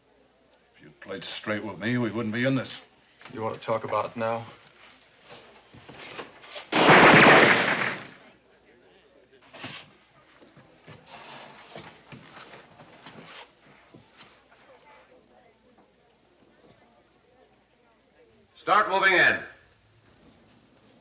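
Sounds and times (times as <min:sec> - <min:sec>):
burst of gunfire: 0:06.7 - 0:08.2
faint knocks and scuffing: 0:09.5 - 0:14.8.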